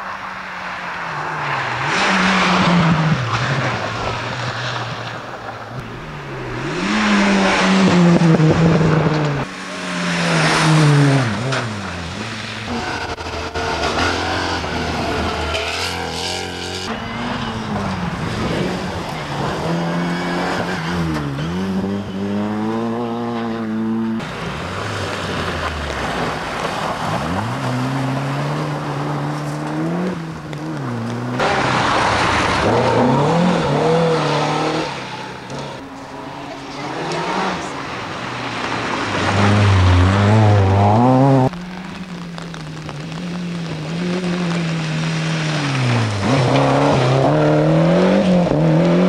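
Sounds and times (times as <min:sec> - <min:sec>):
rally car engines revving: 0:00.0 - 0:49.0.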